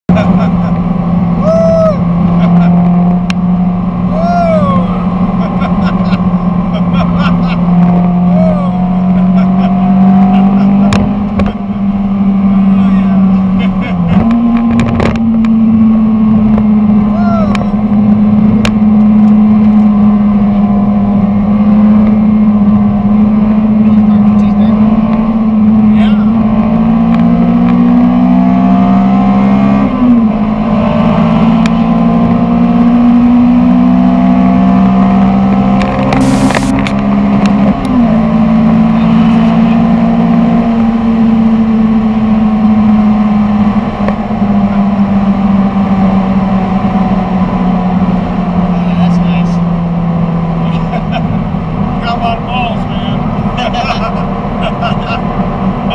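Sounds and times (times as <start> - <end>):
car engine droning: 0.1 - 55.9.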